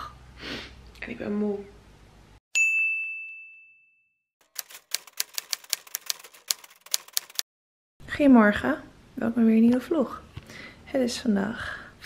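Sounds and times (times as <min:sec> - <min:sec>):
bright ding: 0:02.6 - 0:04.2
typewriter-like key clacks: 0:04.4 - 0:07.4.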